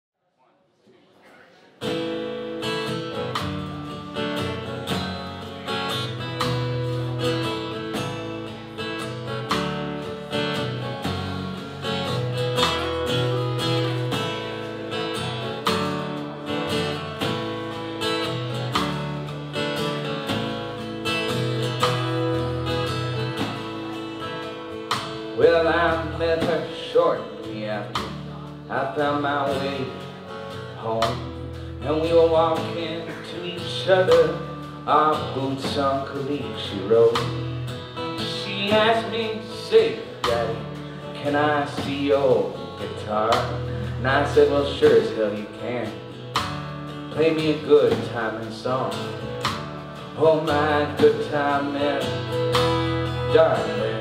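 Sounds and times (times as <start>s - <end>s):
drums: 1.8s - 54.0s
strummed acoustic guitar: 1.8s - 54.0s
upright bass: 1.8s - 54.0s
man singing: 25.1s - 46.1s, 47.1s - 49.3s, 50.1s - 54.0s.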